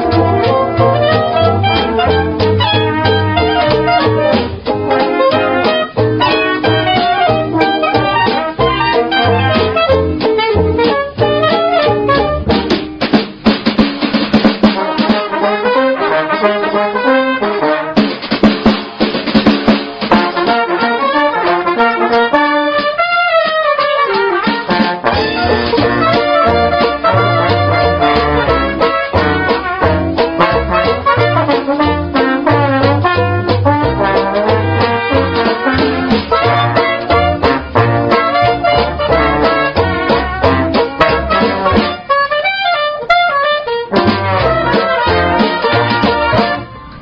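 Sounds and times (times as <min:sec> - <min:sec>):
solo wind instrument melody: 0:00.0 - 0:12.7, 0:20.4 - 0:47.0
dixieland jazz band playing: 0:00.0 - 0:47.0.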